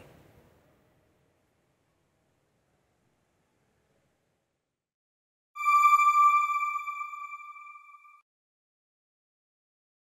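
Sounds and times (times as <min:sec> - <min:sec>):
electronic bell-like ping: 0:05.6 - 0:08.2.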